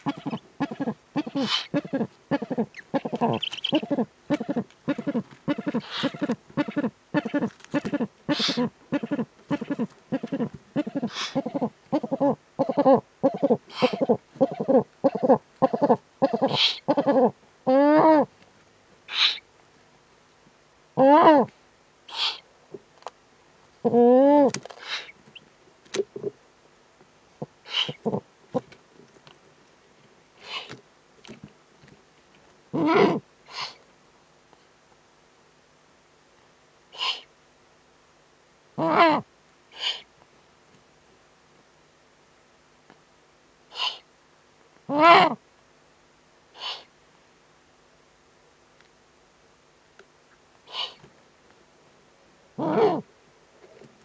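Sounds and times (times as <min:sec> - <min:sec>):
owl raspy hiss: 0:00.0 - 0:17.4, 0:19.1 - 0:19.5, 0:22.1 - 0:22.5, 0:24.8 - 0:25.2, 0:27.4 - 0:28.2, 0:30.4 - 0:30.8, 0:32.8 - 0:33.9, 0:36.9 - 0:37.4, 0:38.8 - 0:40.1, 0:43.7 - 0:44.1, 0:46.5 - 0:47.0, 0:50.6 - 0:51.1.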